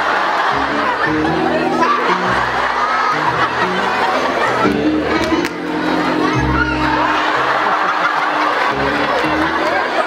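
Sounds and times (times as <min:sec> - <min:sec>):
audience laughing and chattering: 0:00.0 - 0:10.0.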